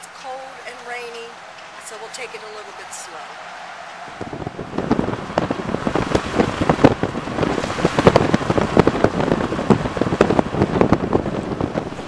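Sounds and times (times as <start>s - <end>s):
heavy rain on a car roof: 4.0s - 12.0s.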